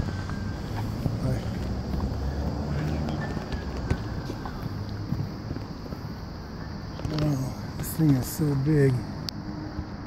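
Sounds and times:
outdoor city background noise: 0:00.0 - 0:10.0.

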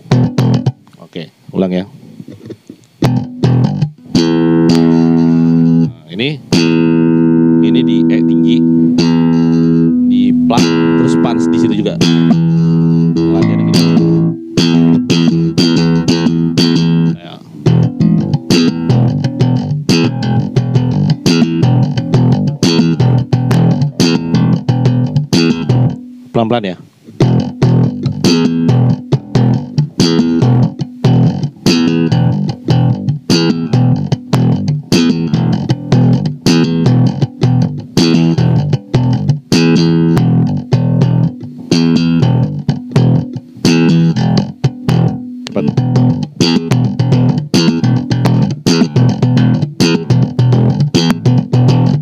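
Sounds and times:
slap bass guitar: 0:00.0 - 0:01.0, 0:02.2 - 0:52.0.

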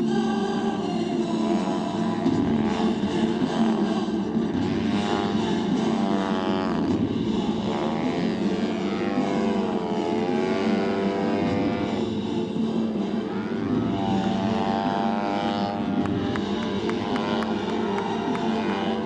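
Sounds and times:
model airplane propeller engine: 0:00.0 - 0:19.0.

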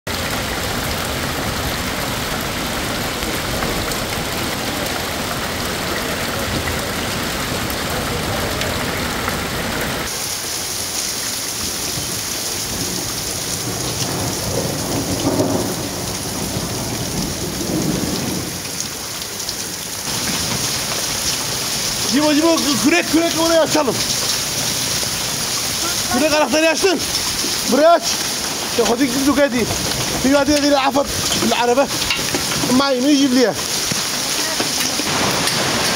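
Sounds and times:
hailstones pelting pavement and cars: 0:00.1 - 0:35.9
rain: 0:00.1 - 0:35.9.

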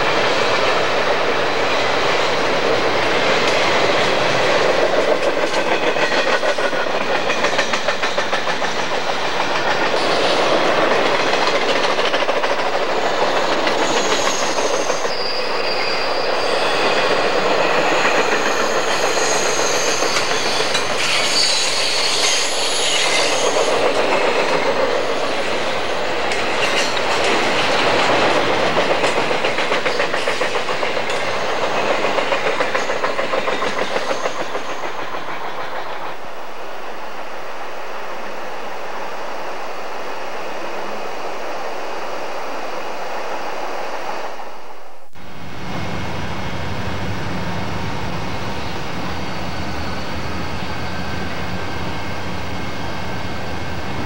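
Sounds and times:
freight train wheels rumbling: 0:00.0 - 0:54.0
high thin wheel squeal: 0:13.8 - 0:17.2, 0:18.6 - 0:23.8.

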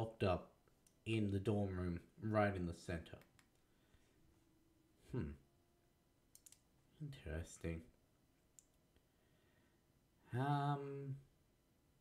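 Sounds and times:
faint clicks: 0:06.3 - 0:06.7.

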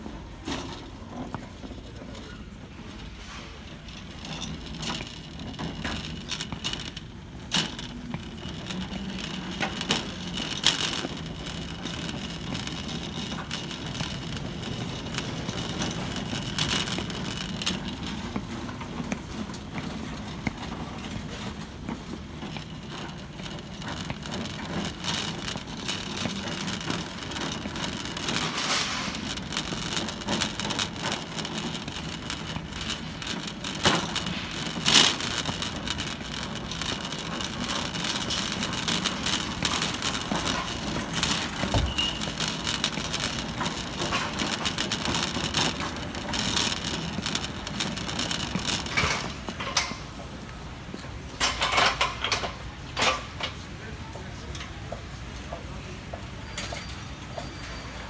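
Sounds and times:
footsteps: 0:00.0 - 0:52.2
shopping cart rattling: 0:00.0 - 0:58.0.

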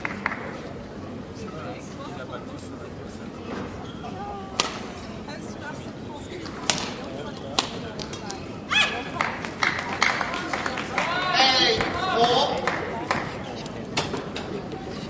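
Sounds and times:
voices: 0:00.0 - 0:15.0
shoe squeaks: 0:03.7 - 0:04.2.

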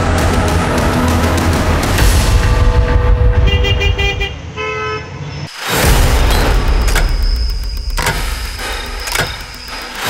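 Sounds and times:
car horns honking: 0:03.3 - 0:05.4.

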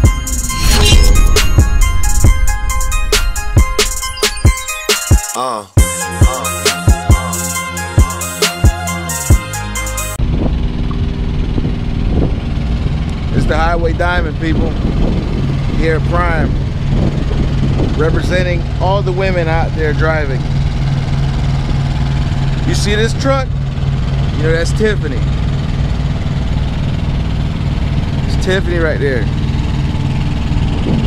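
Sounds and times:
diesel engine idling: 0:18.7 - 0:31.0.

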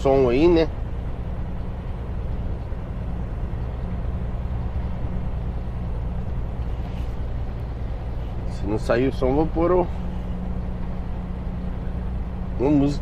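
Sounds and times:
truck diesel engine droning: 0:00.0 - 0:13.0.

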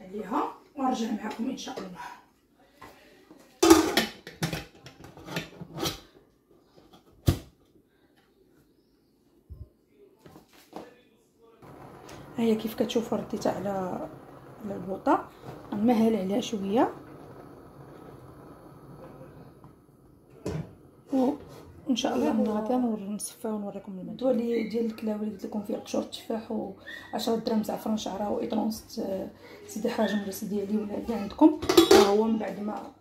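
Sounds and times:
metal lid clanks and clicks: 0:31.6 - 0:32.1.

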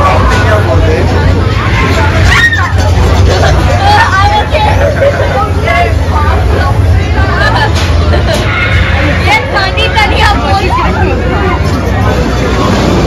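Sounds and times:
low machinery hum: 0:00.0 - 0:13.0
voices chattering: 0:00.0 - 0:13.0.

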